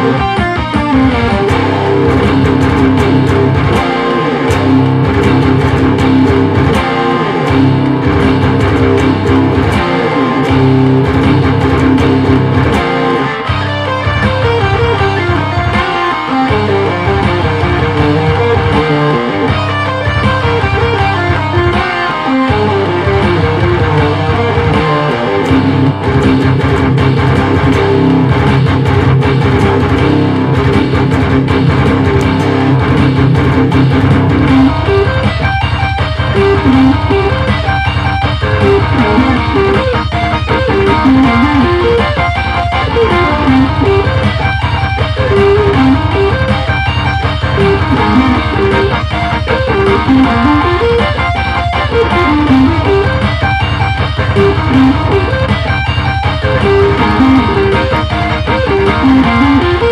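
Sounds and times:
distorted electric guitar riffs: 0.0s - 59.9s
programmed drum track: 0.0s - 59.9s.

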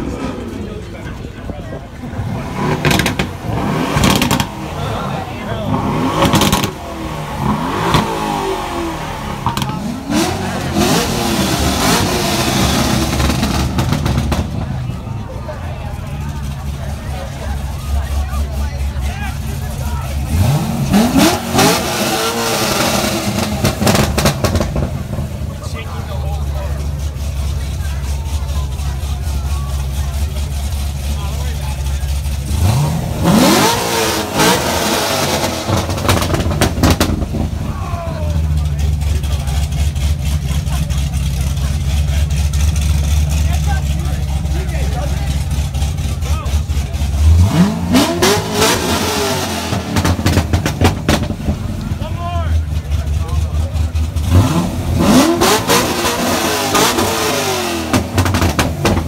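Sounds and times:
crowd chatter: 0.0s - 59.0s
sports car engine revving: 1.8s - 59.0s.

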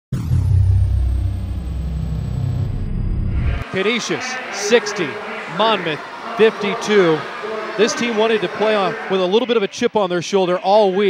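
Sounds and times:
deep rumble: 0.1s - 3.6s.

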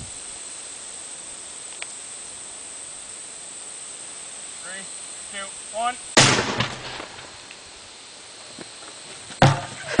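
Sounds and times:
airbag firing bang: 6.2s - 7.4s
barrel thudding on ground: 6.2s - 7.4s, 9.3s - 10.0s.

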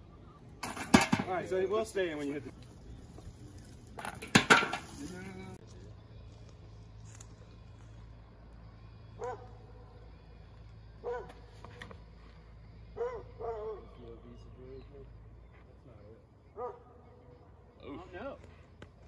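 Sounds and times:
metallic chain rattle: 0.6s - 1.6s, 3.7s - 5.6s
dog barking: 9.2s - 9.6s, 11.0s - 11.4s, 13.0s - 13.9s, 16.6s - 16.9s.

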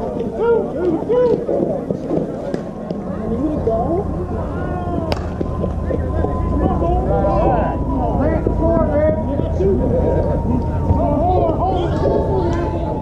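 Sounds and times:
people chattering and calling: 0.0s - 13.0s
sharp crack: 5.1s - 5.6s.

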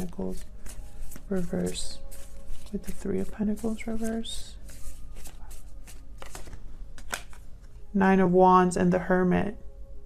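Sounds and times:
cards being shuffled: 0.0s - 7.8s.

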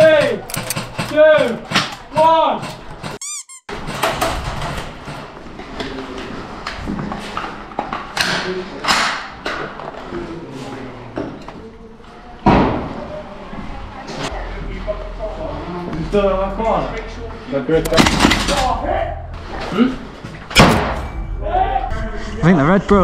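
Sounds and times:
sharp bangs: 20.5s - 21.4s.

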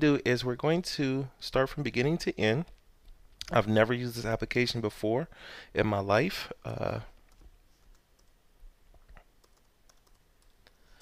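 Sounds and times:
soft keyboard keystrokes: 9.0s - 10.6s.

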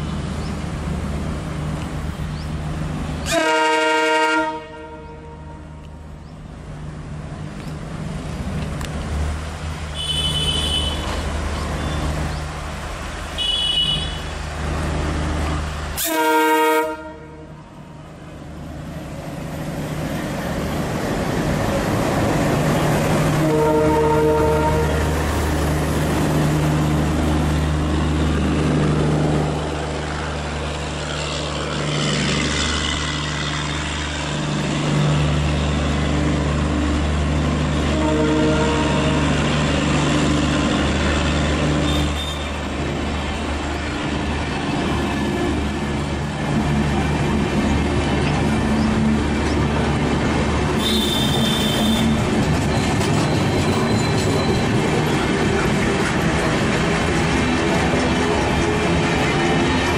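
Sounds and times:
train air horn blasts: 3.2s - 5.8s, 16.0s - 17.6s, 23.4s - 25.1s, 37.8s - 39.3s, 50.8s - 52.2s
diesel locomotive engines chugging: 14.2s - 59.9s.

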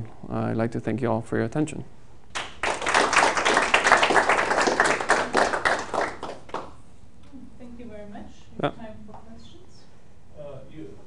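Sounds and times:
audience applauding: 2.4s - 6.8s.

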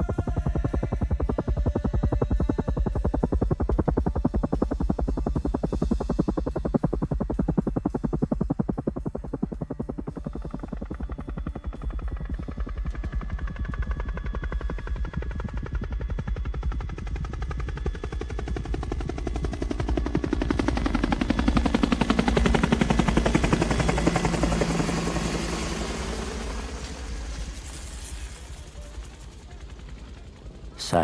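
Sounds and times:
helicopter rotor chopping: 0.0s - 31.0s.

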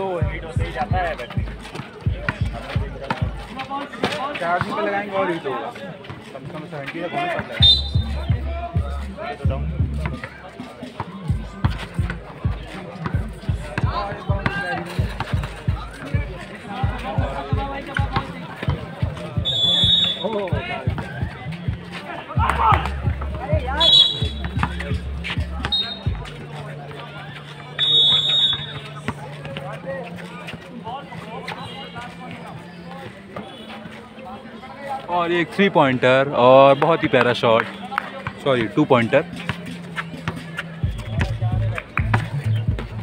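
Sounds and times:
people talking: 0.0s - 43.0s
basketball bouncing on concrete: 0.2s - 3.4s, 11.3s - 27.0s, 39.5s - 43.0s
short high whistle blasts: 7.6s - 8.1s, 19.4s - 20.2s, 23.8s - 24.4s, 25.8s - 26.0s, 27.8s - 28.8s
music from loudspeakers: 10.9s - 29.2s, 39.3s - 43.0s.

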